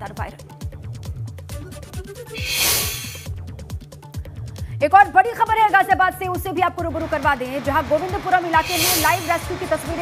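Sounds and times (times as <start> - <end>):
whooshing transition hiss: 2.4 - 3.3, 8.6 - 9.4.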